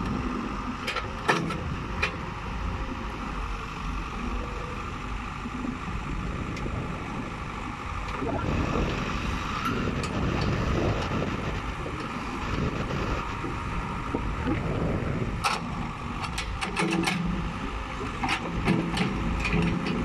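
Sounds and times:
hydraulic boom and bucket working: 0.0s - 2.5s, 5.7s - 20.0s
diesel engine running: 0.0s - 20.0s.

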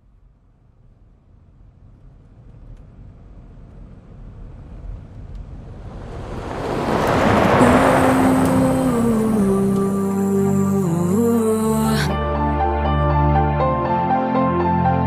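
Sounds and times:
long whoosh: 5.2s - 11.7s
music with held notes: 7.8s - 15.0s.

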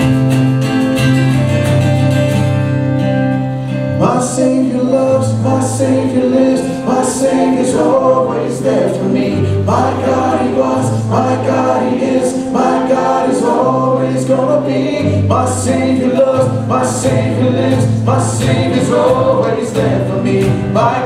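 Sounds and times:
acoustic guitar: 0.0s - 21.0s
held bass notes: 0.0s - 21.0s
keyboard: 0.0s - 21.0s
voices singing together: 4.0s - 21.0s.

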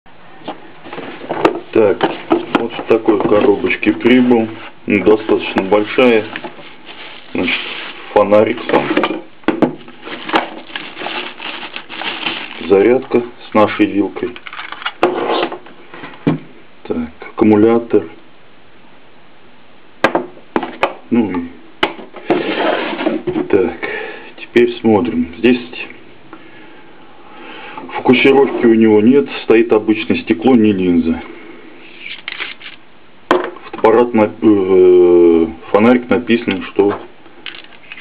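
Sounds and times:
background hiss: 0.1s - 38.0s
plastic bag rustling and crinkling: 0.5s - 16.1s
hands handling flashlight: 37.4s - 38.0s.

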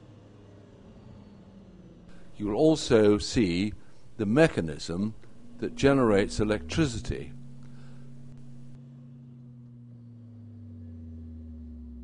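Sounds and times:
car engine humming: 2.1s - 12.0s.

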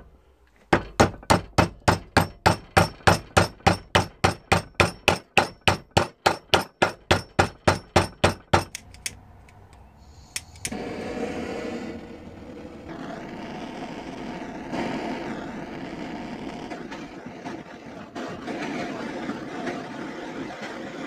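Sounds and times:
gas torch hissing: 9.7s - 21.0s.

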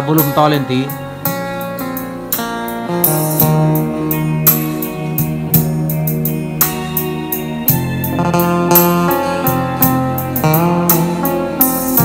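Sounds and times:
loud music with a steady beat: 0.0s - 12.0s.

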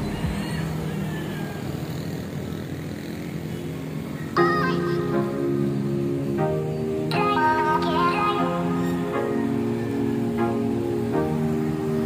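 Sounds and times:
vehicle engine and road noise: 0.0s - 4.4s.

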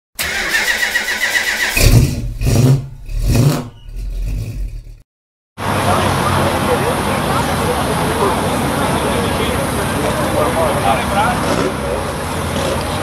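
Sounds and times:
car engine revving: 0.2s - 5.0s, 5.6s - 13.0s
car starter cranking: 0.2s - 5.0s
outdoor background noise: 5.6s - 13.0s.

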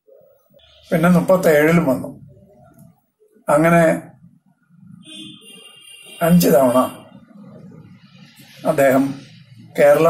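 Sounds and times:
elderly man speaking: 6.2s - 7.8s.

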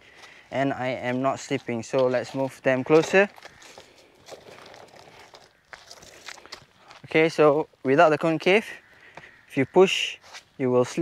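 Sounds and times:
footsteps on concrete: 0.0s - 7.2s.

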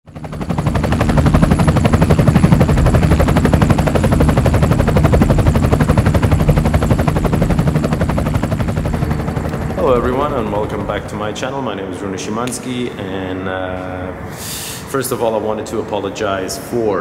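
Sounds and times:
machine pulsing: 0.1s - 11.4s
steady low hum: 0.1s - 17.0s.

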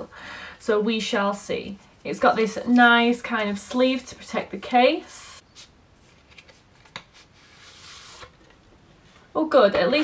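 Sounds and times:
cardboard sleeve rustling: 5.6s - 8.6s.

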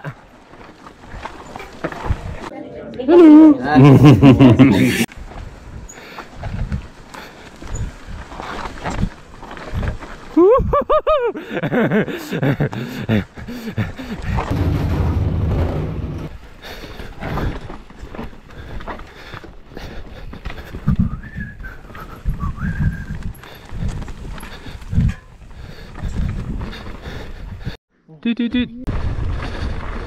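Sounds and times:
bike tyres rumbling on dirt: 5.2s - 10.4s, 11.7s - 27.8s, 28.9s - 30.0s.

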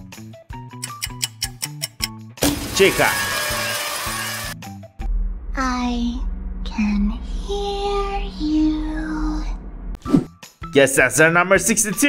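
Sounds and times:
light background music: 0.0s - 5.1s, 8.2s - 12.0s.

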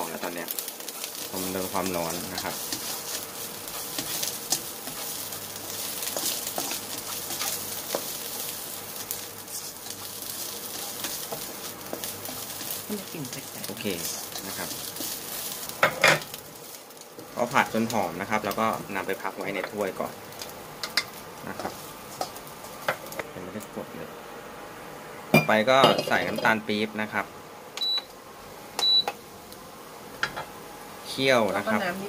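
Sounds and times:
light sizzle: 0.0s - 32.0s
spatula scraping a wok: 0.8s - 17.5s, 20.4s - 23.1s
cooktop control panel beeps: 27.8s - 28.1s, 28.8s - 29.2s.

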